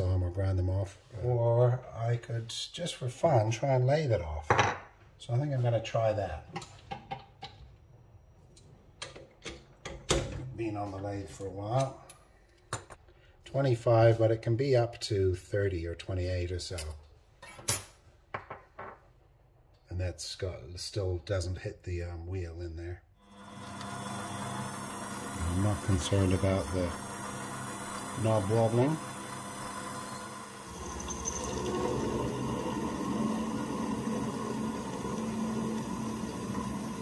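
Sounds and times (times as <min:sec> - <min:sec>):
mini lathe motor hum: 0:23.2 - 0:37.0.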